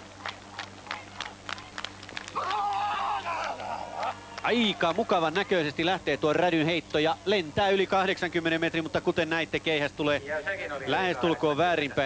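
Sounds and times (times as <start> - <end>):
person yelling: 2.4 - 4.9.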